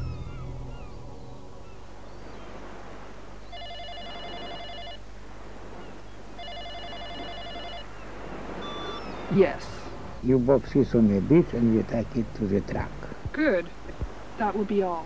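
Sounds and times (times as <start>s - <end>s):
loud low musical hit: 0.0s - 2.2s
mobile phone ringing: 3.5s - 5.0s, 6.4s - 8.0s, 8.6s - 9.2s.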